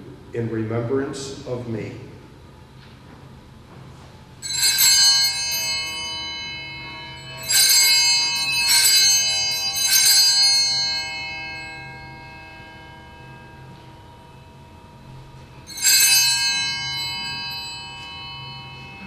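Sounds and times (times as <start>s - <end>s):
altar bells ringing: 4.4s - 19.0s.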